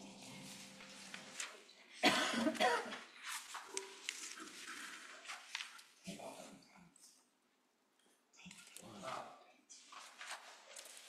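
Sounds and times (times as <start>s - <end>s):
person coughing: 2.0s - 3.0s.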